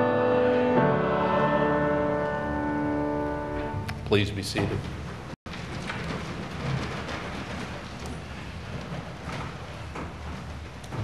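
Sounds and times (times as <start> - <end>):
hall room noise hiss and rumble: 0.8 - 11.0.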